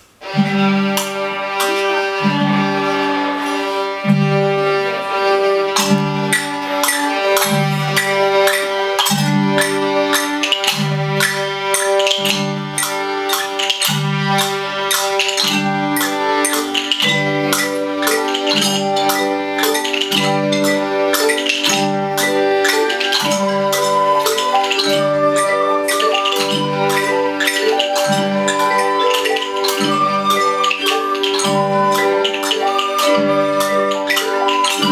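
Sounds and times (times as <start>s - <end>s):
rhythm sticks: 0.0s - 34.9s
violins: 0.0s - 34.9s
wooden xylophones: 0.0s - 34.9s.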